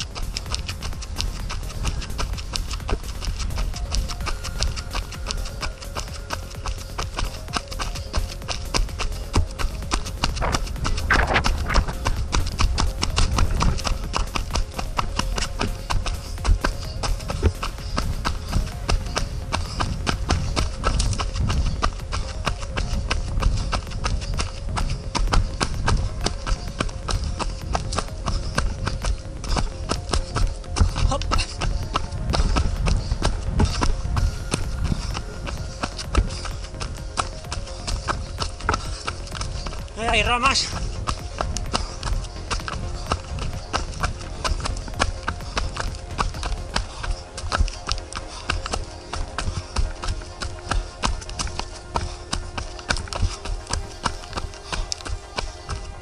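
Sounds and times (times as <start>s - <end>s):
running footsteps on dirt: 0.0s - 56.0s.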